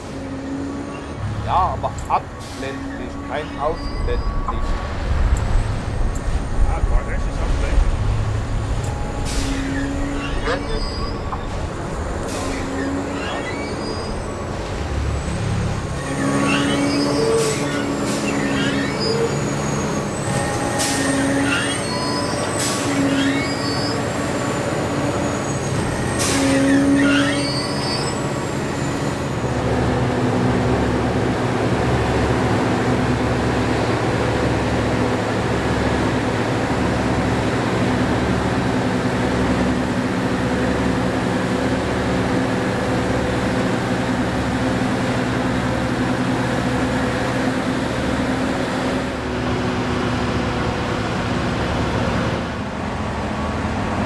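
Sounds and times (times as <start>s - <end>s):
high squeals: 2.4s - 7.8s, 8.9s - 29.8s.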